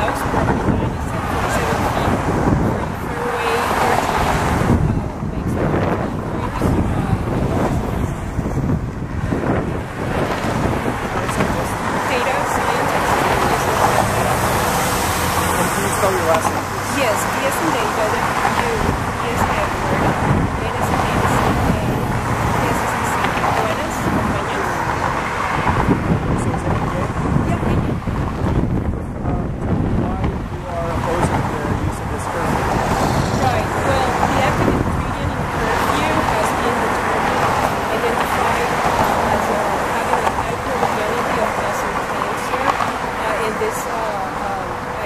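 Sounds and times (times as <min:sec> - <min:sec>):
woman talking: 0:00.0 - 0:08.3, 0:10.8 - 0:14.4, 0:16.4 - 0:25.0, 0:26.4 - 0:28.0, 0:33.3 - 0:45.0
road traffic noise: 0:00.0 - 0:45.0.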